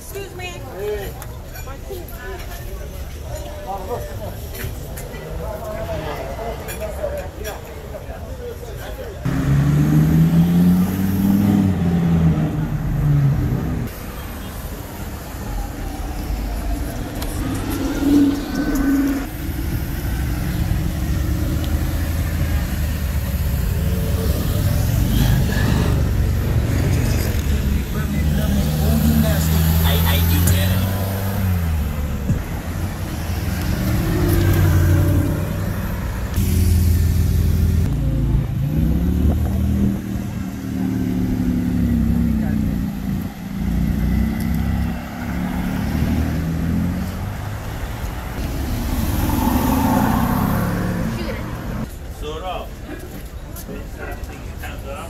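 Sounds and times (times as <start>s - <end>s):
sports car engines revving: 9.2s - 51.9s.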